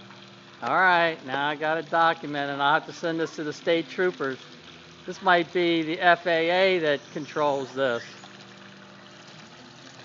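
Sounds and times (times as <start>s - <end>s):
low steady hum: 0.0s - 10.0s
pool water trickling: 0.0s - 10.0s.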